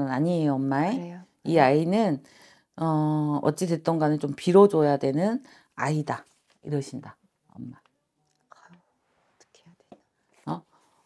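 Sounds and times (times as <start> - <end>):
person murmuring a word: 0.9 - 1.2.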